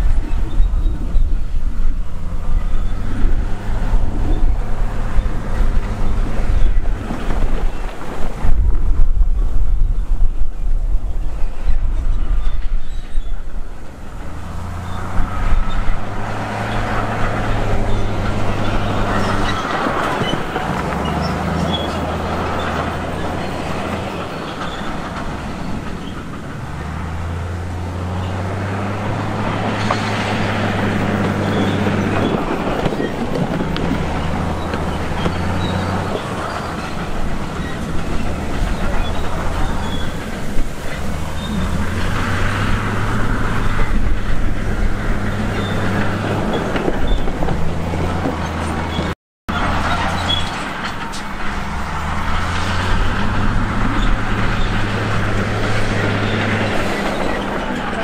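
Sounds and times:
truck engine running: 0.0 - 11.3, 11.9 - 58.0.

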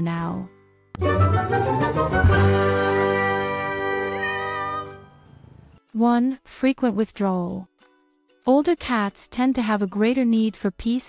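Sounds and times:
chime-like logo jingle: 0.5 - 5.8.

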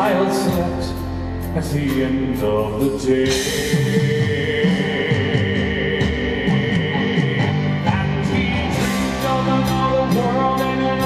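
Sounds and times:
live rock band music: 0.0 - 11.0.

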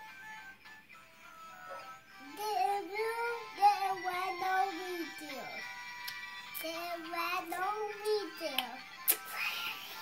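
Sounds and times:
faint music: 0.0 - 10.0
high childlike singing voice: 2.2 - 5.8, 6.5 - 10.0.

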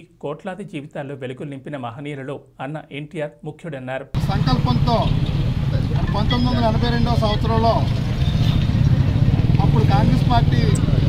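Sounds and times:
vehicle engine running: 4.2 - 11.0.

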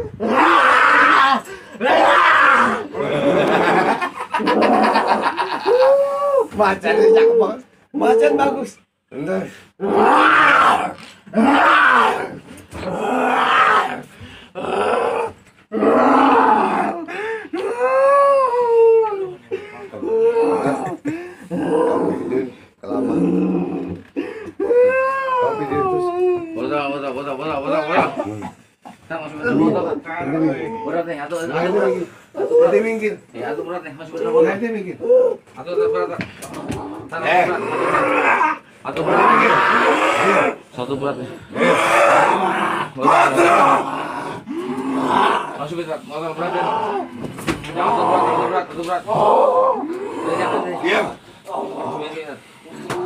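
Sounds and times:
person growling and groaning: 0.0 - 7.4, 9.8 - 26.5, 36.5 - 40.6, 41.5 - 45.7, 47.8 - 53.0.

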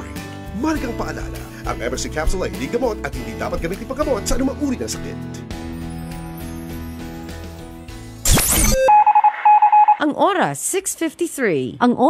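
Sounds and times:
rapid high electronic beeps: 8.2 - 10.0
low beep: 8.3 - 10.0.

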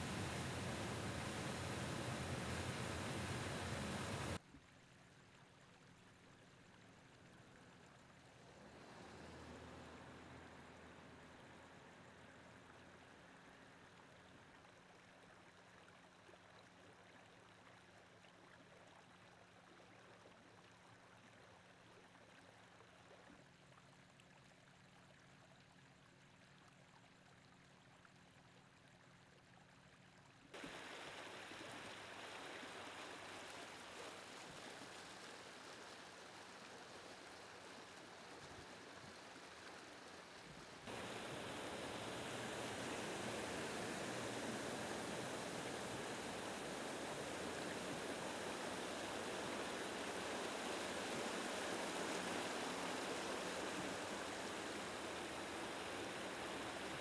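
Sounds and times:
water rushing along gutter: 0.0 - 4.4, 30.6 - 57.0.

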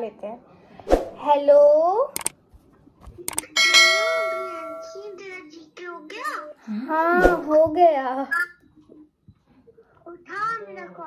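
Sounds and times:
mouse clicks: 3.3 - 3.5
bell ding: 3.4 - 5.2.

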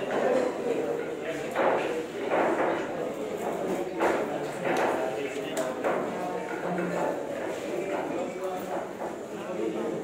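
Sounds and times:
background voices chattering: 0.0 - 10.0.

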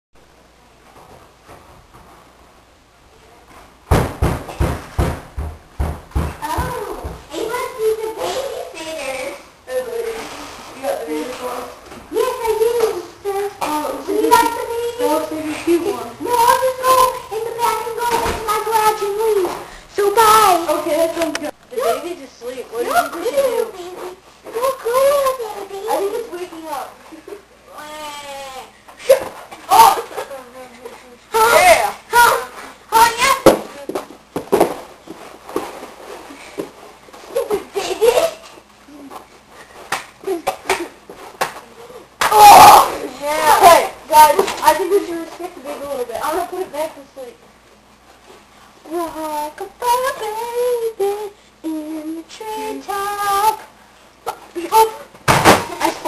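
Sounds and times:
loud thumps: 3.8 - 7.3.

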